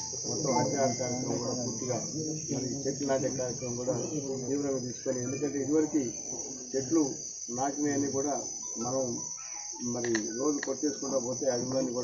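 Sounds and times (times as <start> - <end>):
crickets chirping drone: 0.0 - 12.0
man giving a speech: 9.8 - 12.0.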